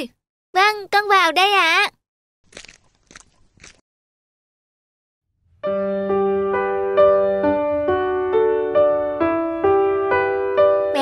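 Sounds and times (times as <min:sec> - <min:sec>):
cartoon crunching and rustling: 0:02.4 - 0:03.8.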